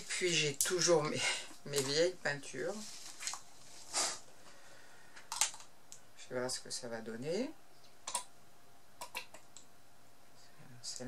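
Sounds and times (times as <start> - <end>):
plastic rustle: 1.8 - 4.2
plastic cup clicks: 5.3 - 5.7.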